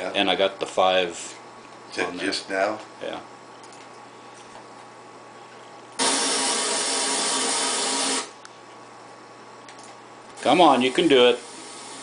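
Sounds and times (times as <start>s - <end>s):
loud burst of hiss: 6.0s - 8.3s, 11.3s - 12.0s.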